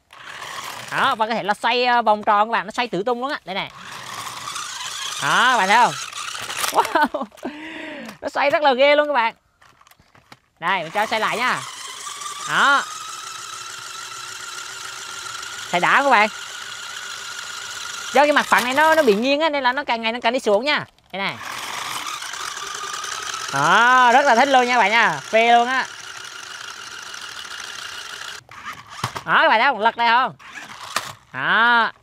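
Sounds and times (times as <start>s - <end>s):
electric motors whining: 0.0s - 1.6s, 3.5s - 8.2s, 9.6s - 29.4s, 30.4s - 32.0s
toy car spinning on glass: 0.1s - 1.2s, 3.7s - 7.1s, 10.7s - 19.4s, 21.3s - 29.3s, 30.4s - 31.4s.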